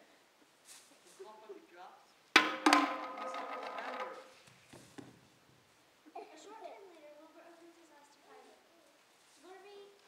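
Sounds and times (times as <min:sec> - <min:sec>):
bowl clattering on wooden floor: 0:02.4 - 0:04.4.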